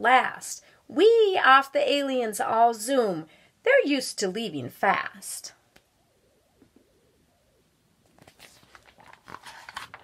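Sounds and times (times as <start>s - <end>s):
paper pages rustling: 8.0s - 10.0s.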